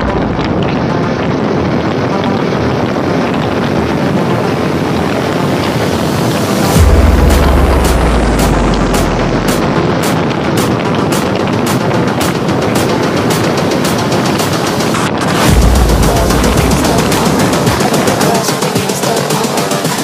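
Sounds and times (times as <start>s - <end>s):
deep bass hit: 0.0s - 2.4s, 6.6s - 12.3s, 15.3s - 18.5s
electronic music: 0.0s - 20.0s
repeated drum hits: 6.5s - 20.0s.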